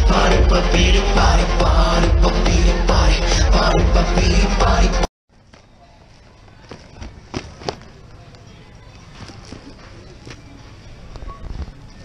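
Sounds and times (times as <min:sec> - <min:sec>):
faint background voices: 0:05.4 - 0:12.0.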